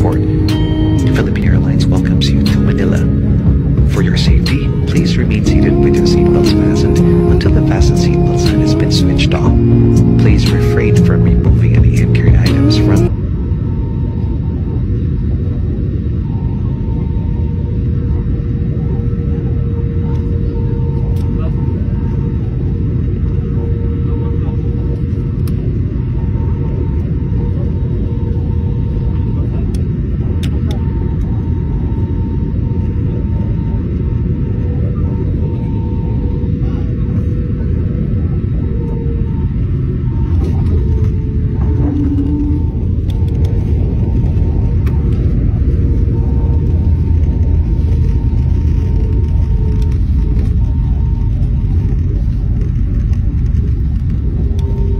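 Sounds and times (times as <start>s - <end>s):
steady engine tones: 0.0s - 13.2s, 18.0s - 54.9s
jet engine and airflow rumble: 0.0s - 54.9s.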